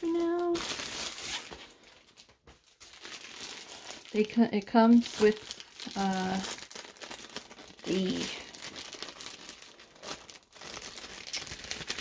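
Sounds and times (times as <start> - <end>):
packaging wrap rustling: 0.0 - 12.0.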